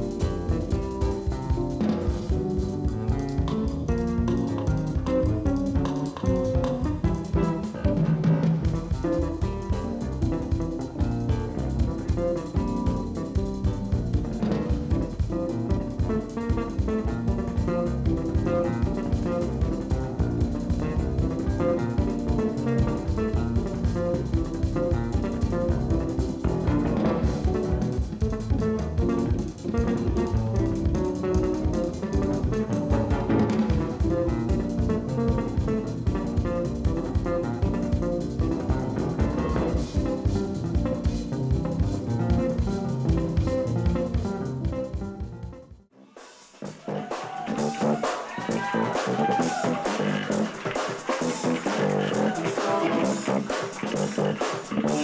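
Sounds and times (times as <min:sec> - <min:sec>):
electric bass playing jazz: 0:00.0 - 0:45.9, 0:46.6 - 0:55.0
drum kit: 0:00.0 - 0:55.0.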